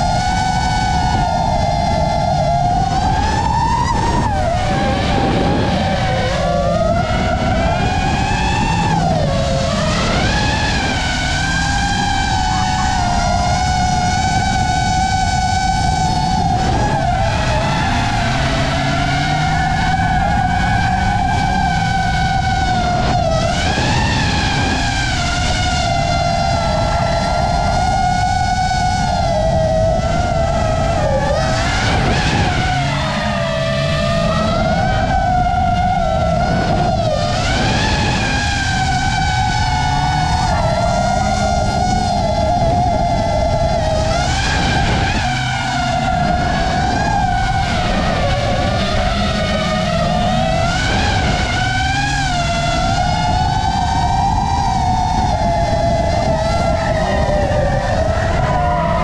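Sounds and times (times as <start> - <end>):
car engine revving: 0.0 - 59.0
drone propellers whining: 0.0 - 59.0.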